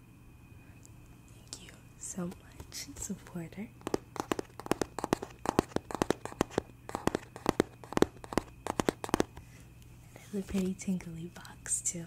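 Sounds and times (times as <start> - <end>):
fingernails tapping on cardboard box: 3.8 - 9.4.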